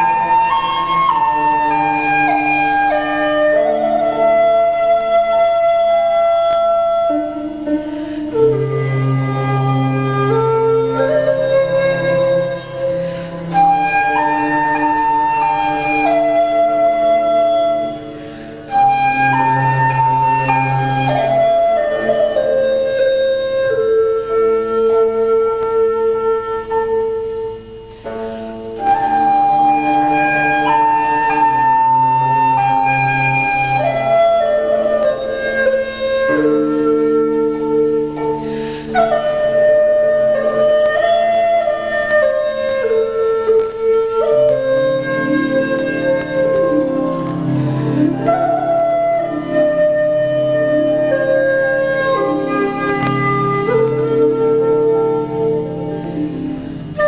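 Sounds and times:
bamboo flute melody: 0.0 - 57.0
low accompaniment: 0.0 - 57.0.

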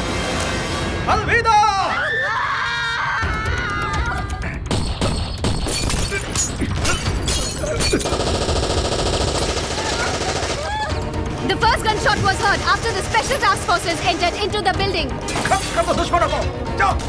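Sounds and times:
dramatic film score: 0.0 - 17.0.

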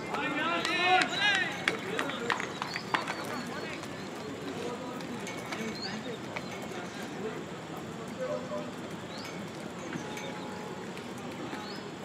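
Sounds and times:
distant voices calling: 0.0 - 12.0.

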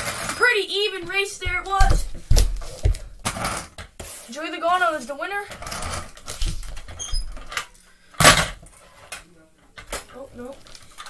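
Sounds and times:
toy cars rolling on wooden floor: 0.0 - 0.6, 5.4 - 6.9.

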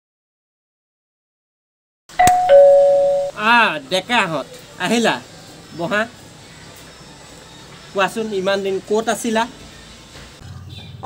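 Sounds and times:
ding-dong doorbell chime: 2.2 - 3.4.

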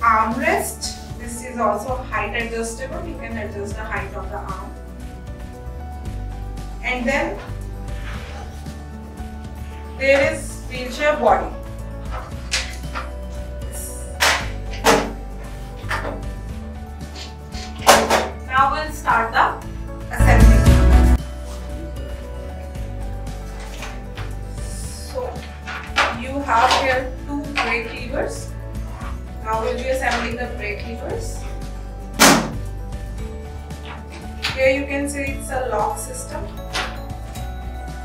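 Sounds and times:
background music: 0.0 - 38.0
wheelchair frame clacking: 12.0 - 13.5, 25.1 - 28.2.

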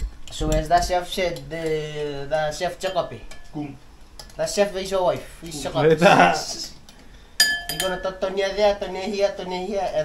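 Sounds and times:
fork clinking against glass bowl: 7.4 - 8.2
high ringing tone: 7.4 - 8.2.

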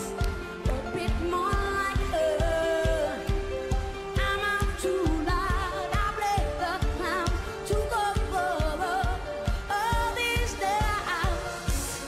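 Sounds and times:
live pop band: 0.0 - 12.0
woman singing with vibrato: 0.0 - 12.0.

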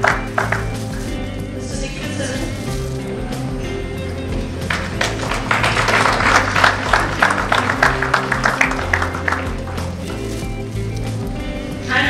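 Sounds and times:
audience applauding: 0.0 - 0.9, 4.5 - 10.2
background music: 0.0 - 12.0.

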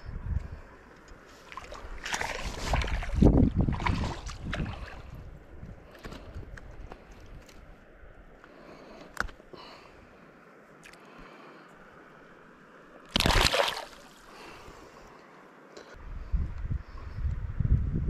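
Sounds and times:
faint water sounds: 0.0 - 17.2
fish splashing into water: 13.1 - 14.2.

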